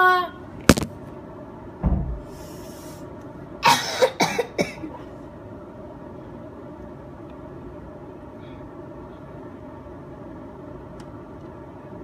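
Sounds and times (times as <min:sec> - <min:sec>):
person coughing: 0:03.6 - 0:05.0.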